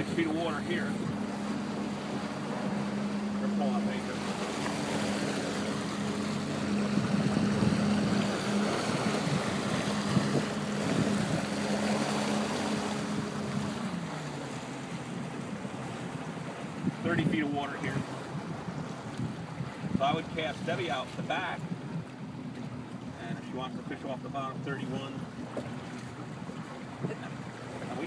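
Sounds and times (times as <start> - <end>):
motorboat engine running: 0.0 - 28.0
water rushing past hull: 0.0 - 28.0
wind buffeting microphone: 0.0 - 28.0.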